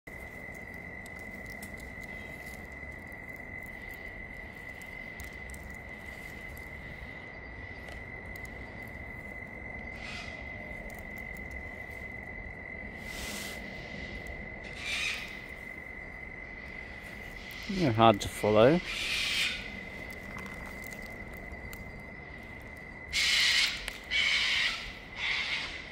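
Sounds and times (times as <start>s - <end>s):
faint outdoor background hiss: 0.1s - 25.9s
insect trilling: 0.1s - 25.9s.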